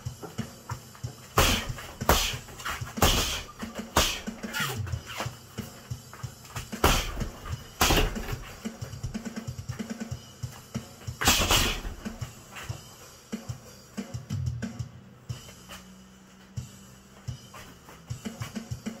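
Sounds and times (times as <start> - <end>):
background music with steady beat: 0.0 - 19.0
boxing gloves hitting punching bag: 0.1 - 9.9, 11.0 - 12.3.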